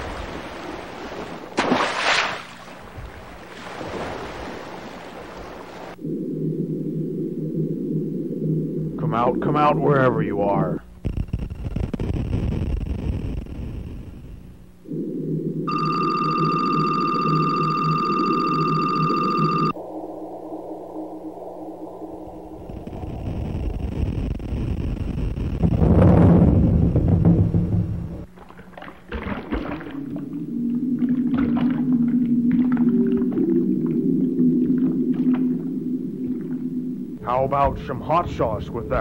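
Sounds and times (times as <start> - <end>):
low drones: 18.4 - 24.6.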